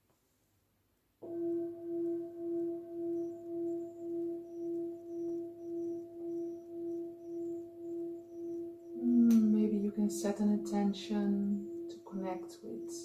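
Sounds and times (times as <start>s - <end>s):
singing bowl ringing: 1.2s - 13.0s.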